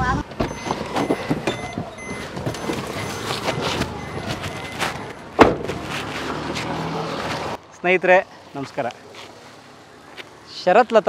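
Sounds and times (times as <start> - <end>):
outdoor background noise: 0.0 - 11.0
car door slam: 5.4 - 5.9.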